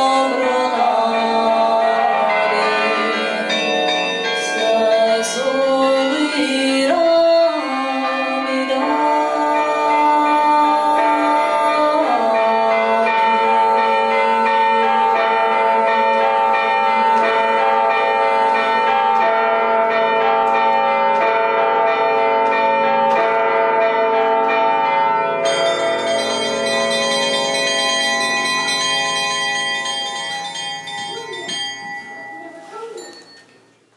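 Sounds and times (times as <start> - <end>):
electronic carillon bell notes: 24.7 - 33.5.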